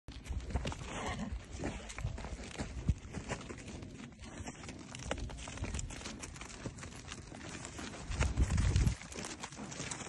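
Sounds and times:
hooves scuffling on dirt: 0.1 - 10.0.

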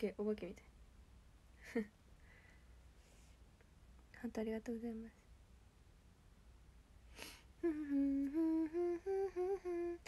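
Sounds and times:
quick breath: 2.2 - 3.4
woman humming melody: 7.6 - 10.0.

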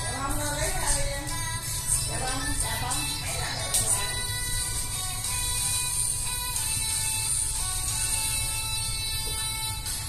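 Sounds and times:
dance music with low bass: 0.0 - 10.0.

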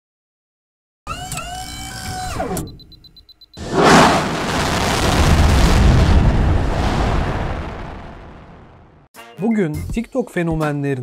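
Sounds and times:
rocket launch rush: 3.6 - 8.8.

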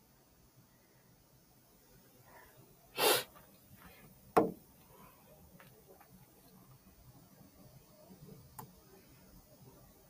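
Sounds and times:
person's sharp burst of breath: 3.0 - 3.3.

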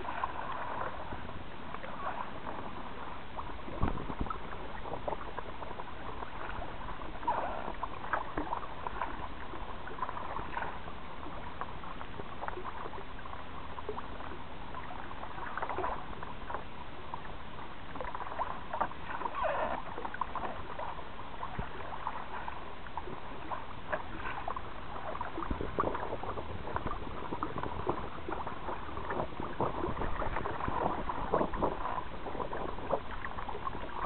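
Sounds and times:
water slapping against kayak hull: 0.0 - 13.4, 17.9 - 34.0.

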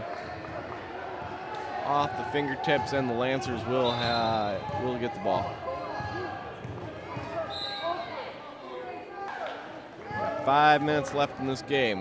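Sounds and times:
murmur of players and spectators: 0.0 - 12.0.

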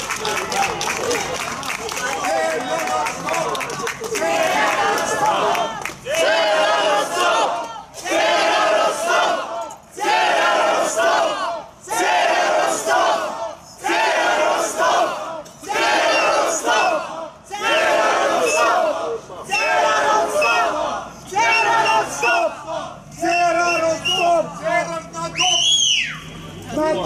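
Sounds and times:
crowd chanting: 2.0 - 24.9
sharp whistle: 18.4 - 18.8, 20.3 - 20.7, 21.4 - 22.4, 23.2 - 24.4, 25.3 - 26.3.

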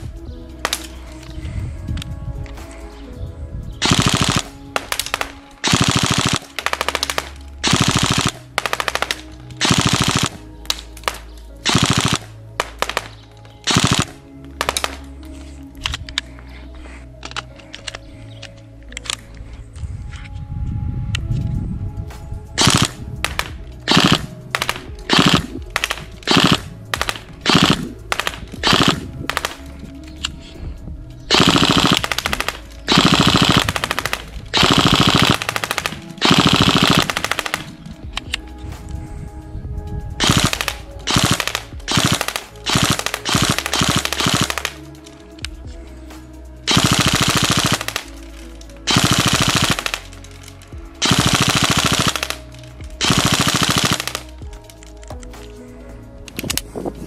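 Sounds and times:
airsoft gun firing bursts: 3.8 - 10.4, 11.0 - 15.1, 22.6 - 29.6, 31.3 - 37.8, 40.2 - 44.8, 46.7 - 48.2, 48.9 - 50.3, 51.0 - 54.4.

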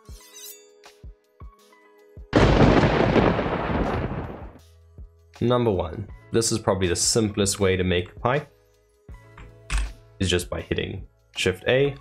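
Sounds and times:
loud explosion-like boom: 2.4 - 4.6.

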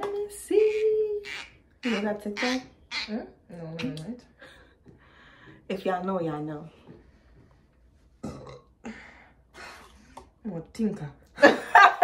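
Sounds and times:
person burping: 8.2 - 8.9.

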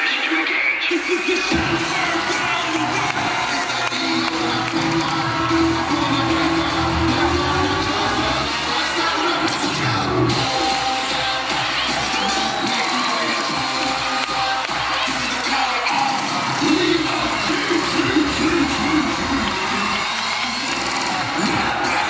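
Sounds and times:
crowd cheering: 0.0 - 22.0
loud music over sound system: 0.0 - 22.0.

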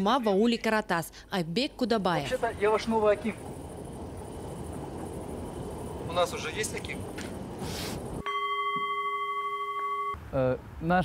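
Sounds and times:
steady bell-like tone: 8.2 - 10.2.

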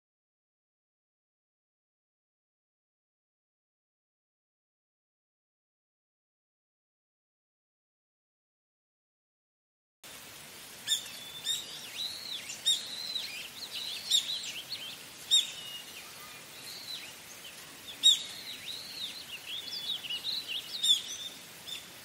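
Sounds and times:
small birds chirping: 10.6 - 22.0.

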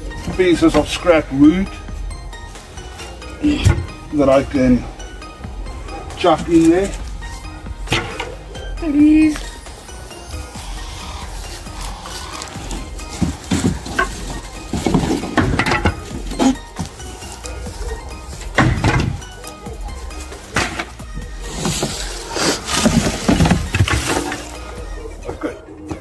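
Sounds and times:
branches and leaves tumbling: 0.0 - 5.3, 5.9 - 25.0
faint background music: 0.0 - 26.0
scrap wood knocking and clattering: 12.6 - 17.0, 18.5 - 19.3, 20.6 - 24.6.

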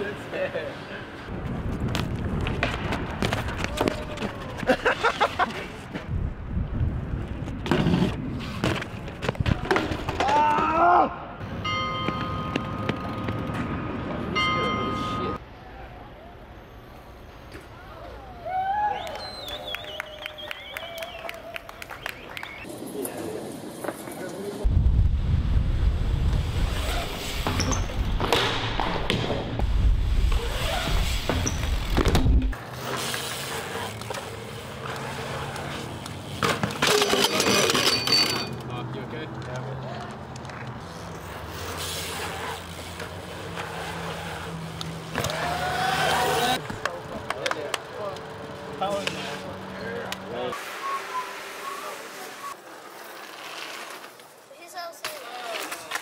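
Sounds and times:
bike tyres rolling on concrete: 0.0 - 14.8, 17.5 - 56.0
people shouting: 10.2 - 11.4, 45.2 - 46.6
low rumble: 24.7 - 26.8.

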